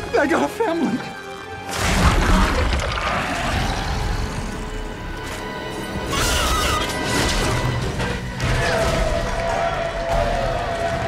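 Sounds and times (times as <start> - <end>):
dramatic orchestral film music: 0.0 - 11.0.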